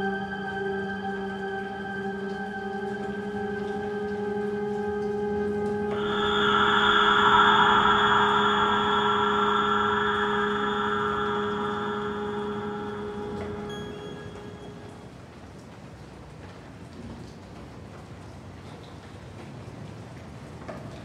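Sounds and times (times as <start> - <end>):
bright noisy synth layer: 0.0 - 15.2
low ambient drone: 0.0 - 15.4.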